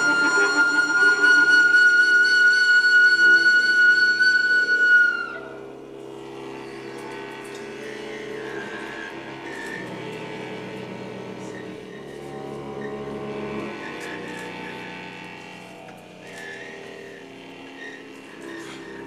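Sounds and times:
wind instruments droning: 0.0s - 19.0s.

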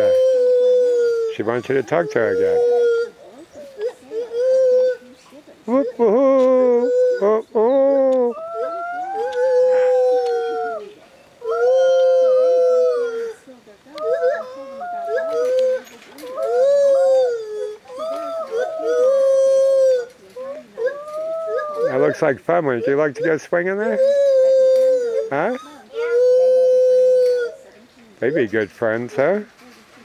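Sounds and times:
gibbon whooping: 0.0s - 28.6s.

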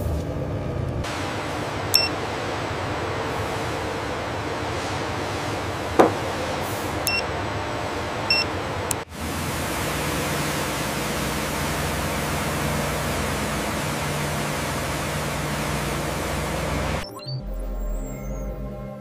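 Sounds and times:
sharp tap: 6.0s - 6.2s
steady hiss: 7.6s - 17.0s
high-pressure water jets spraying: 8.1s - 17.0s.

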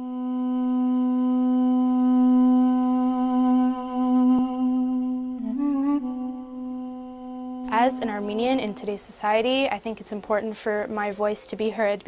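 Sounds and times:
duduk holding long note: 0.0s - 8.9s.

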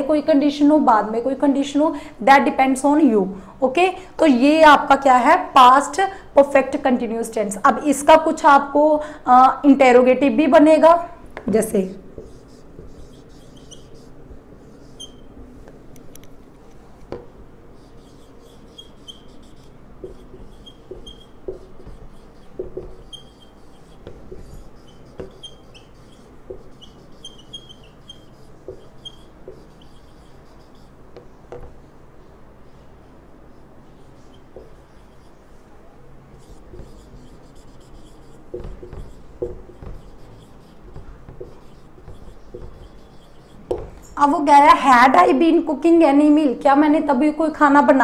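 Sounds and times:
marker writing on whiteboard: 10.4s - 45.3s.

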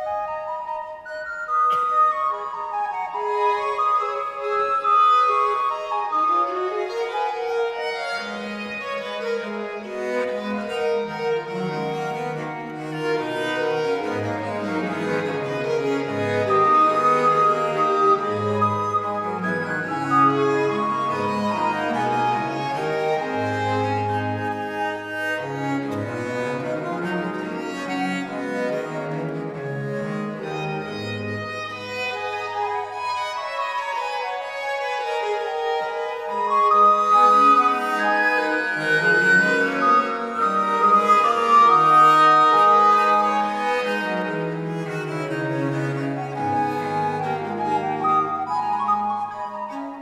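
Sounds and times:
baroque violin: 0.0s - 50.0s.

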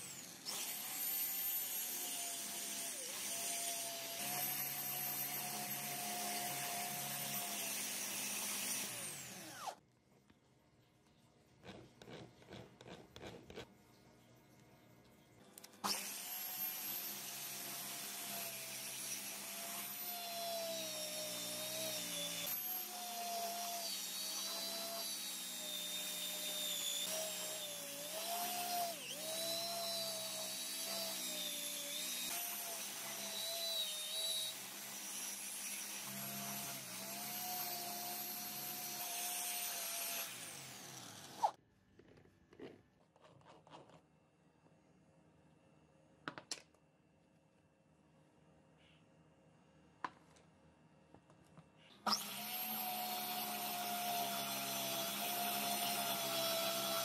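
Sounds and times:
electric hand drill running: 0.0s - 9.8s, 15.8s - 41.5s, 52.1s - 57.0s.

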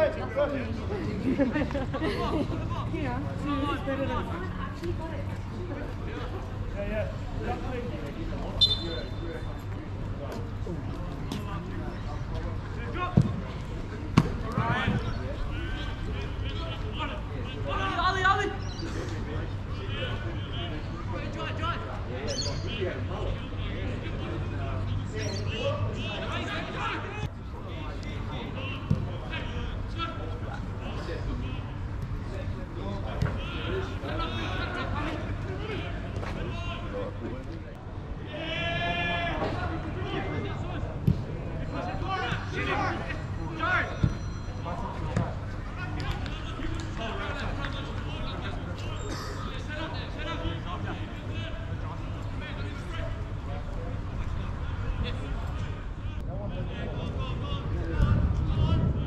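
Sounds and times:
distant shouts: 33.0s - 37.1s, 38.1s - 52.2s.

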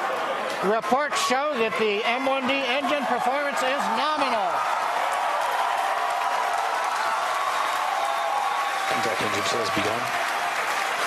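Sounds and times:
crowd applauding: 0.0s - 11.0s
crowd cheering: 0.0s - 11.0s.

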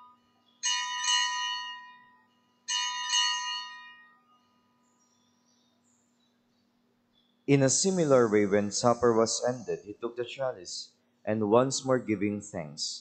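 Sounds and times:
altar bell ringing: 0.0s - 4.9s.

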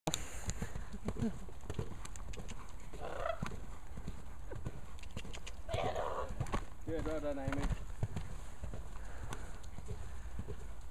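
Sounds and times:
hoofbeats trotting on sand: 0.1s - 10.9s.

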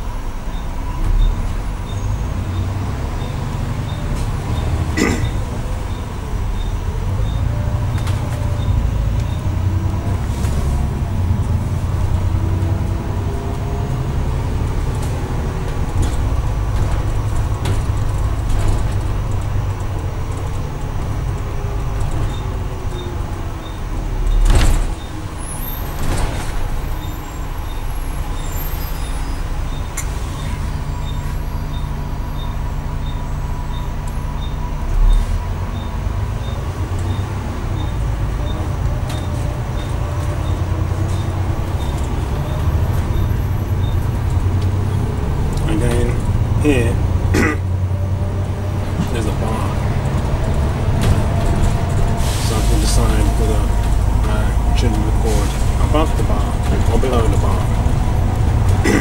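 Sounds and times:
diesel bus engine: 0.0s - 59.0s.

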